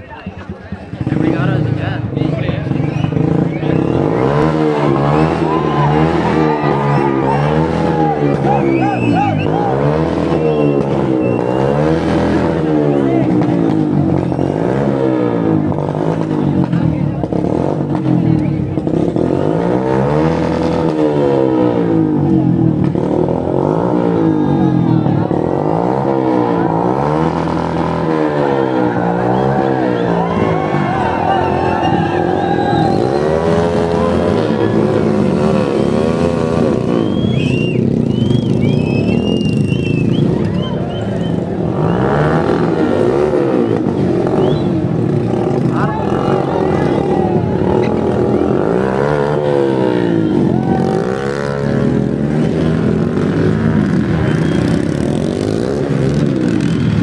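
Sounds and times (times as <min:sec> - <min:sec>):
motorcycle engines revving: 0:00.0 - 0:57.0.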